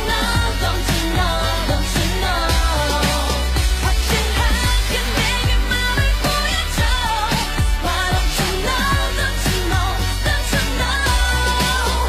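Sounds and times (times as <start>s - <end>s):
pop song with sung vocals: 0.0s - 12.0s.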